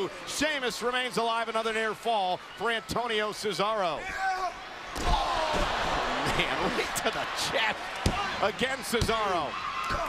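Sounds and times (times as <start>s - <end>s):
arena crowd noise: 0.0s - 10.0s.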